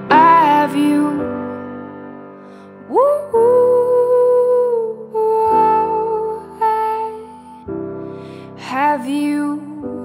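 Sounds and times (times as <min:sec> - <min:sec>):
soft musical accompaniment: 0:00.0 - 0:10.0.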